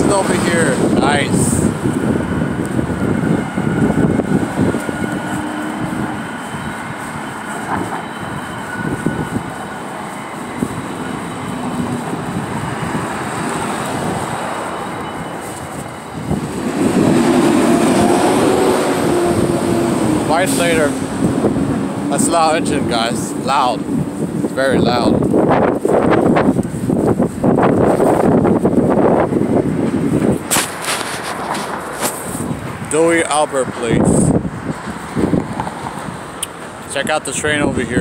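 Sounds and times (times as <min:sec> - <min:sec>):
large vehicle engine running: 0:00.0 - 0:38.0
traffic noise: 0:00.0 - 0:38.0.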